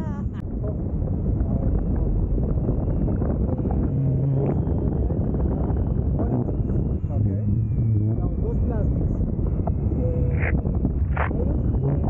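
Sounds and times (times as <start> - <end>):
wind buffeting microphone: 0.0 - 12.0
faint high whine: 0.6 - 12.0.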